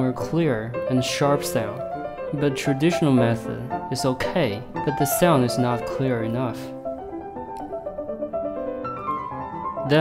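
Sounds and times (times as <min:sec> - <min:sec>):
piano music: 0:00.0 - 0:10.0.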